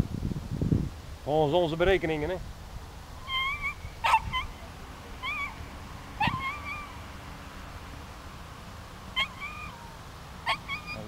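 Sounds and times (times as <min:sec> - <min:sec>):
bird calling: 0:02.9 - 0:11.0.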